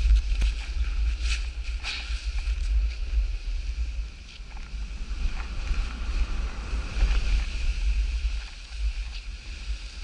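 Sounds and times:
snow scraping under skis: 0.0 - 10.0
wind buffeting microphone: 0.0 - 10.0.

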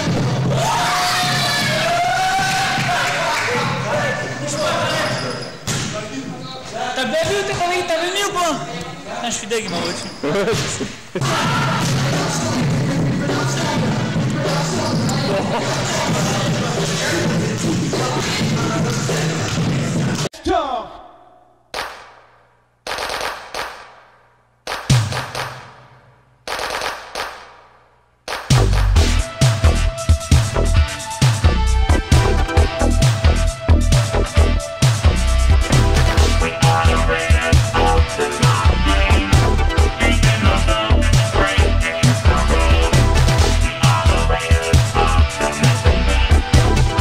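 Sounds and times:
music: 0.0 - 3.1, 11.3 - 20.3, 28.3 - 47.0
sharp slap: 21.7 - 24.1, 24.7 - 28.9.

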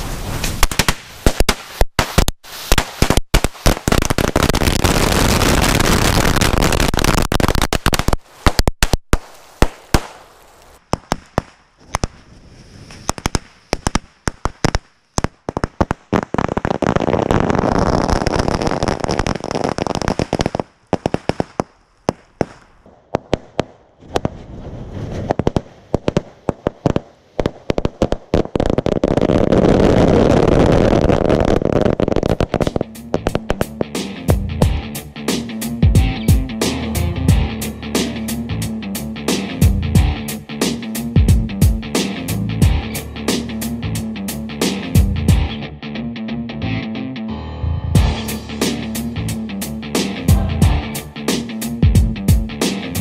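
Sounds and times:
firecrackers banging: 0.0 - 34.8.

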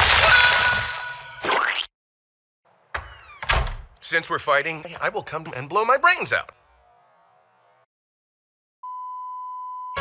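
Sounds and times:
censor bleep tone: 8.8 - 10.0.

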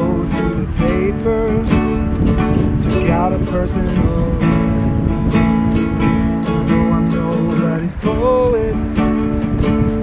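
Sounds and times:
acoustic guitar strumming: 0.0 - 10.0
ukulele strumming: 0.0 - 10.0.

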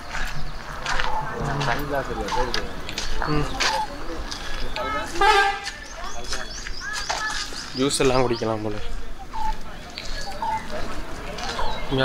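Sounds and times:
people talking: 0.2 - 12.0
horn toot: 5.2 - 5.7.

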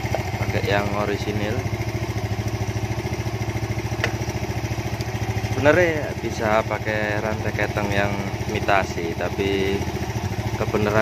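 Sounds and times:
single-cylinder engine idling: 0.0 - 11.0.

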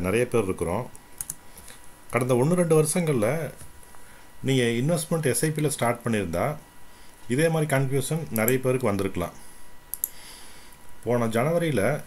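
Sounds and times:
man talking: 0.0 - 1.0, 2.1 - 3.7, 4.4 - 6.7, 7.3 - 9.4, 11.0 - 12.0
faint clicks: 9.9 - 10.2.

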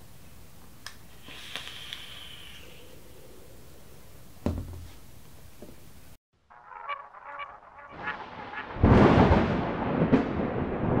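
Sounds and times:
short pitched tones: 6.5 - 8.8.

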